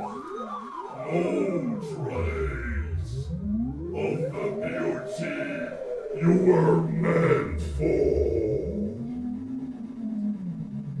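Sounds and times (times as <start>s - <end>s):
low rough vocal sound: 1.1s - 3.3s, 3.9s - 9.2s.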